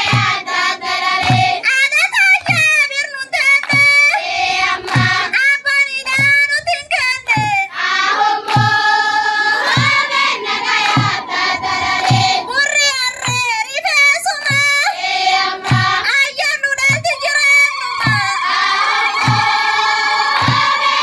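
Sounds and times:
group singing together: 0:00.0 - 0:01.6, 0:04.2 - 0:05.4, 0:07.3 - 0:13.4, 0:14.4 - 0:16.2, 0:17.2 - 0:21.0
low beat: 0:08.4 - 0:13.7, 0:16.8 - 0:21.0.

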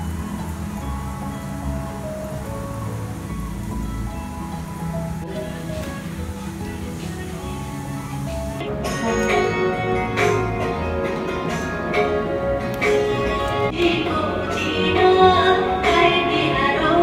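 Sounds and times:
gentle instrumental music: 0:00.0 - 0:17.0
sharp percussive strikes: 0:08.7 - 0:10.8.

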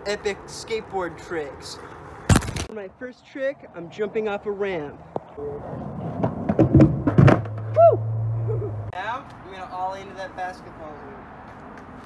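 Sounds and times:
skateboard clattering on concrete: 0:06.1 - 0:07.6.

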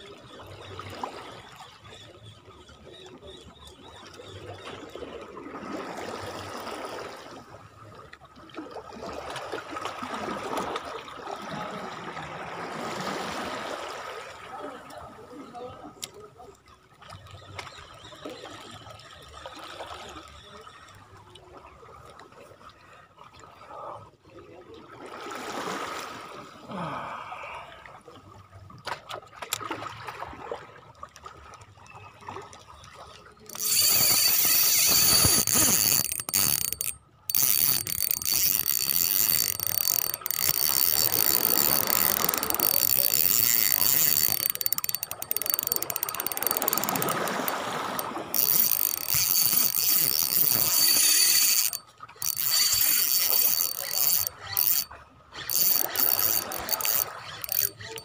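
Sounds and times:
fishing reel drag clicking: 0:33.5 - 0:58.0.

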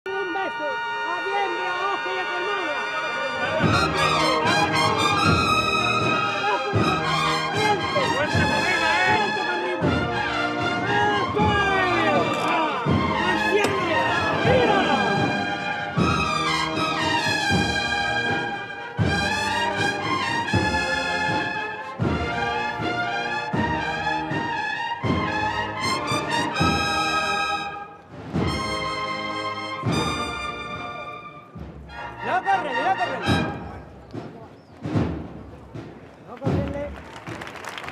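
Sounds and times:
crowd voices: 0:00.1 - 0:23.2
brass band playing a march: 0:00.1 - 0:35.9
steady drum beat: 0:03.5 - 0:27.3, 0:31.4 - 0:37.9.

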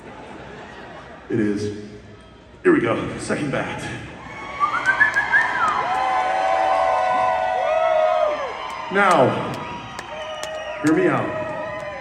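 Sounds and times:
crowd cheering: 0:04.2 - 0:12.0
people whooping: 0:04.2 - 0:12.0.

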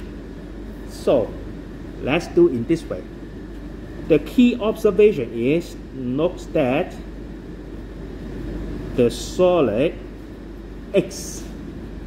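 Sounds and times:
air conditioner humming: 0:00.0 - 0:12.0
electrical mains hum: 0:00.0 - 0:12.0.

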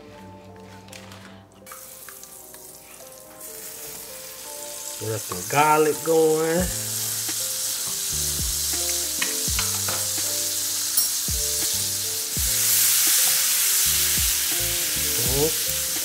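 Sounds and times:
background music with beat: 0:00.0 - 0:16.0
butter and garlic sizzling: 0:01.6 - 0:16.0.

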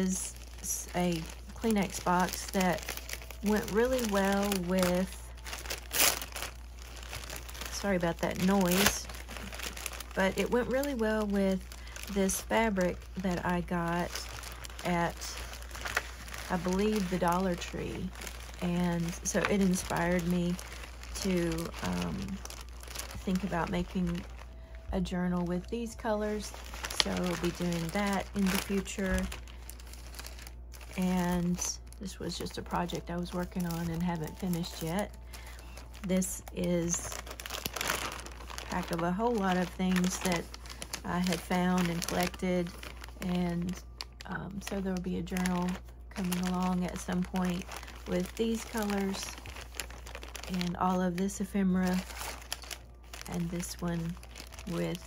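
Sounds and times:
plastic bag crinkling: 0:00.0 - 0:55.0.

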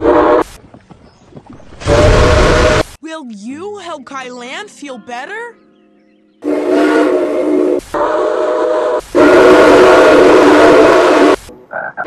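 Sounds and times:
steam locomotive whistle blasts: 0:01.8 - 0:02.9, 0:06.4 - 0:11.4.

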